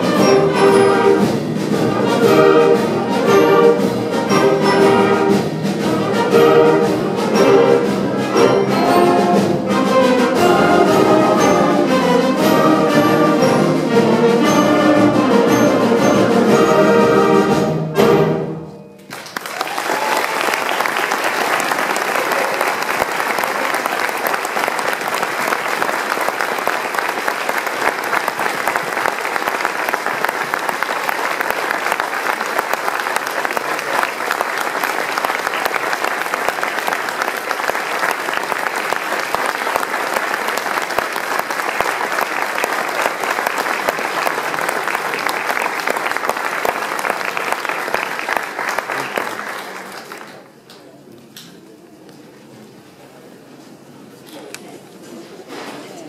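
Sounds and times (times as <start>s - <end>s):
audience applause: 19.0s - 50.9s.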